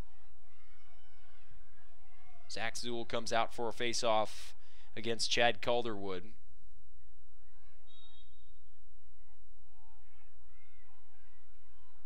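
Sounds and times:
faint referee whistle: 0:07.8 - 0:08.7.

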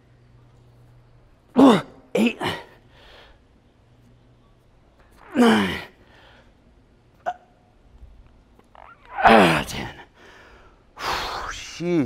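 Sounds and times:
man grunting with effort: 0:01.6 - 0:02.7, 0:05.2 - 0:05.9, 0:09.1 - 0:10.0
faint breathing: 0:02.8 - 0:03.5, 0:06.0 - 0:06.6, 0:10.1 - 0:11.5.

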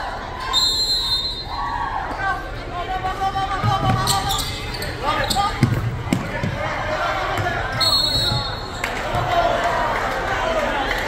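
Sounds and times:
crowd voices echoing: 0:00.0 - 0:11.0
referee's whistle: 0:00.4 - 0:01.6, 0:07.7 - 0:08.8
basketball bouncing on hardwood floor: 0:05.6 - 0:06.6.

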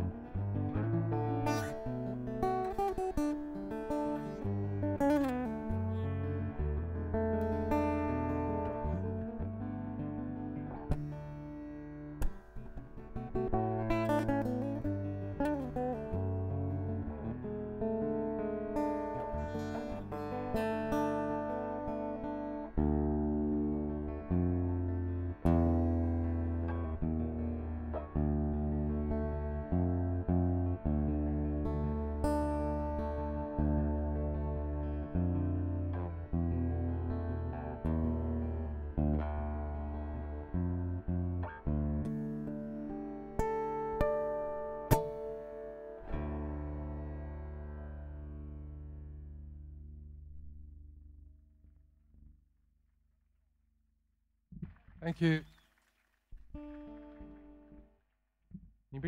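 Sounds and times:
acoustic guitar playing: 0:00.0 - 0:51.0, 0:56.4 - 0:58.0.

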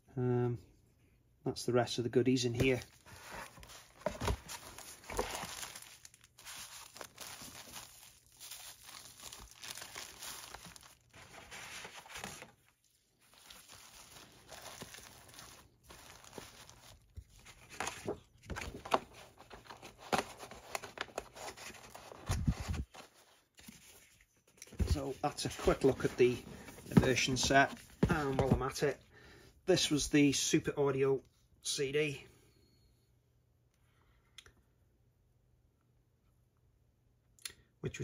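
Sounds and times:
plastic packaging rustling: 0:02.6 - 0:28.8.

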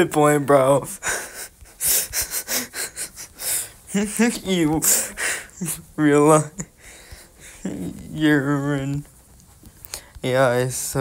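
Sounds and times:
breathy laughter: 0:01.0 - 0:03.6.

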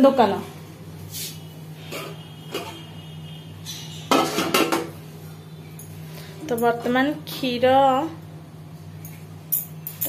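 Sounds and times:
metal kitchen utensils clattering: 0:03.6 - 0:05.0.

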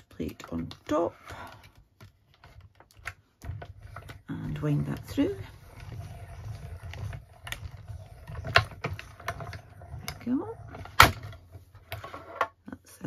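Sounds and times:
die-cutting machine rollers rumbling: 0:03.4 - 0:11.6.

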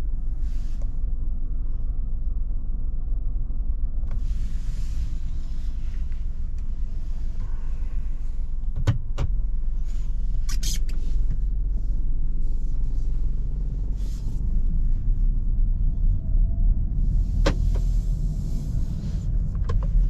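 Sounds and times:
car engine low rumble: 0:00.0 - 0:20.0.

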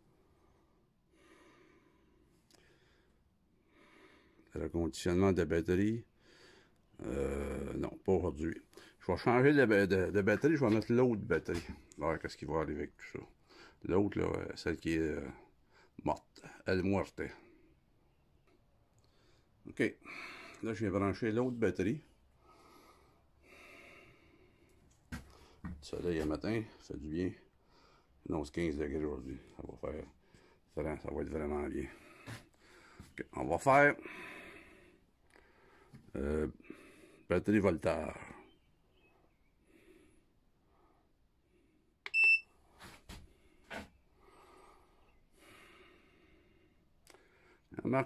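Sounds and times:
faint breaths near microphone: 0:00.0 - 0:04.6, 0:06.0 - 0:07.0, 0:08.6 - 0:09.2, 0:13.2 - 0:13.9, 0:15.2 - 0:16.7, 0:19.0 - 0:28.3, 0:29.2 - 0:31.0, 0:31.6 - 0:37.3, 0:38.1 - 0:41.9, 0:42.6 - 0:47.8
man speaking: 0:07.0 - 0:15.4, 0:16.0 - 0:17.4, 0:19.7 - 0:20.0, 0:20.6 - 0:22.1, 0:25.8 - 0:27.4, 0:28.3 - 0:30.1, 0:30.8 - 0:32.0, 0:33.2 - 0:34.0, 0:36.1 - 0:36.6, 0:37.3 - 0:38.4, 0:47.7 - 0:48.0.

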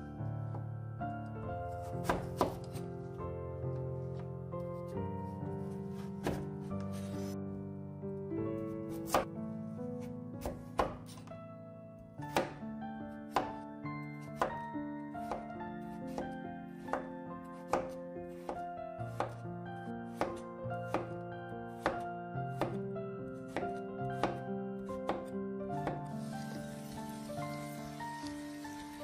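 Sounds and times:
background music with held notes: 0:00.0 - 0:29.0
knife chopping on wooden board: 0:01.9 - 0:02.8, 0:06.0 - 0:06.5, 0:09.0 - 0:09.3, 0:10.4 - 0:11.3, 0:12.2 - 0:12.6, 0:13.3 - 0:13.6, 0:14.4 - 0:14.6, 0:15.2 - 0:15.5, 0:16.1 - 0:17.1, 0:17.7 - 0:19.4, 0:20.1 - 0:21.1, 0:21.8 - 0:22.0, 0:22.6 - 0:22.8, 0:23.5 - 0:24.4, 0:25.0 - 0:27.2.

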